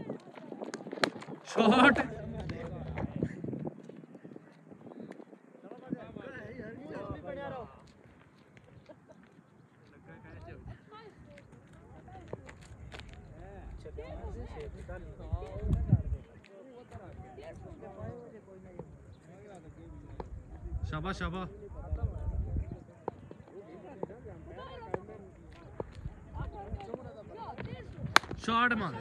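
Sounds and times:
people talking and calling: 0.0 - 29.0.

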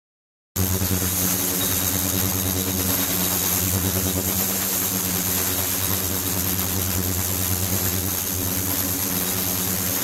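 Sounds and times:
machine hum with high whine: 0.6 - 10.0.

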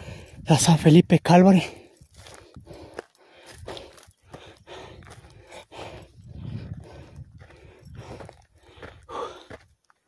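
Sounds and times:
footsteps crunching on gravel: 1.8 - 10.0.

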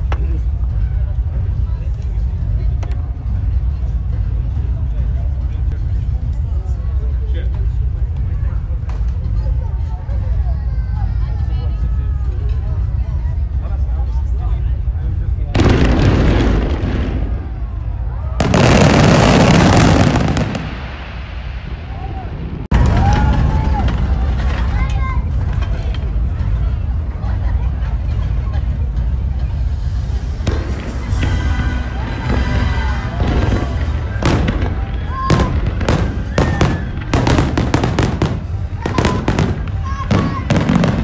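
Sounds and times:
people talking: 0.0 - 20.8, 21.8 - 41.0
steady low rumble: 0.0 - 41.0
firework crack: 15.5 - 26.6, 30.0 - 41.0.

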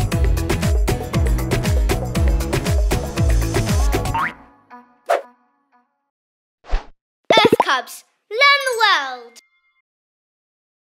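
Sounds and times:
children's cartoon song: 3.6 - 6.0
cartoon sound effects: 7.3 - 7.7
cartoon voice: 7.3 - 8.8.

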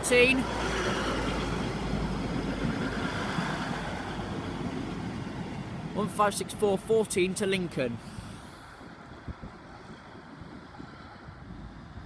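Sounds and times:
diesel train engines: 0.0 - 10.7
wheel and rail noise: 0.0 - 12.0.

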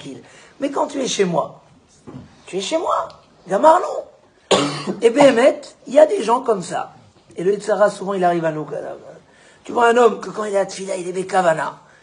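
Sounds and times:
man speaking: 0.0 - 4.2, 4.8 - 11.9
loud cough: 4.5 - 5.6.

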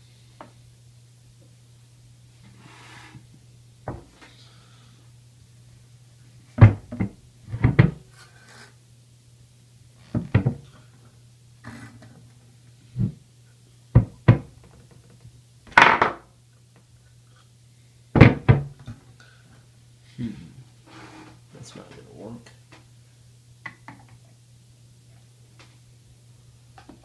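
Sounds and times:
metal scraping on table: 20.9 - 21.4.

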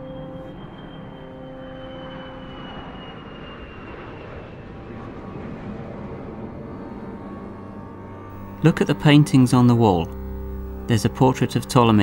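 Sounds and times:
music tones: 0.0 - 3.4, 5.0 - 12.0
small airplane flying past: 0.0 - 12.0.

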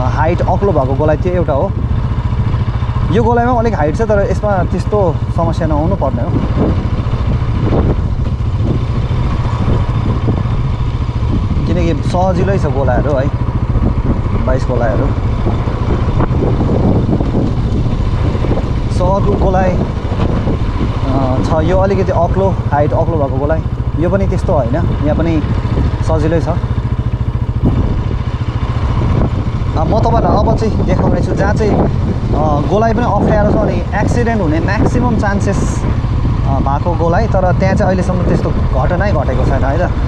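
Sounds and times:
motorcycle engine rumbling: 0.0 - 40.0.

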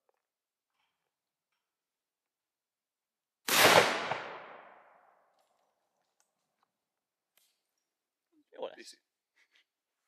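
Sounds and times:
shotgun blast with echo: 3.5 - 4.7.

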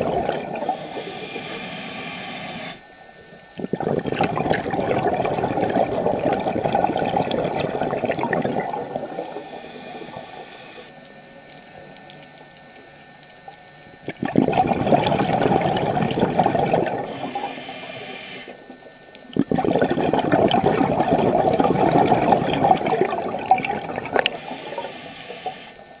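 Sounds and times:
bubbles gurgling underwater: 0.0 - 1.5, 3.3 - 10.9, 11.7 - 17.6, 18.6 - 25.6
diver inhaling: 0.0 - 2.9, 9.1 - 11.0, 16.2 - 18.6, 23.8 - 25.9.

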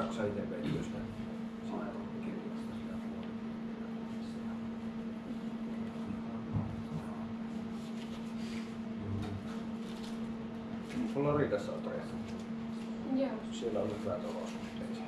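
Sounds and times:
steady machine hum: 0.0 - 15.0.

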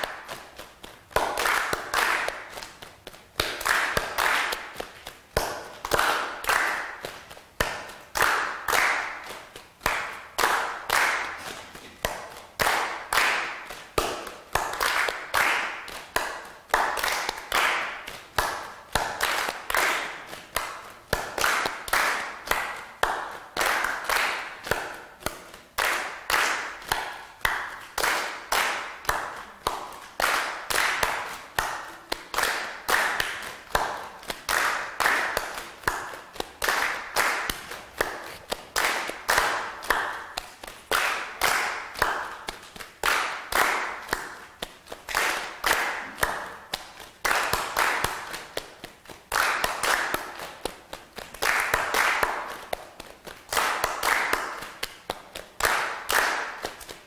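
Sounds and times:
hands clapping a rhythm: 0.0 - 57.0.

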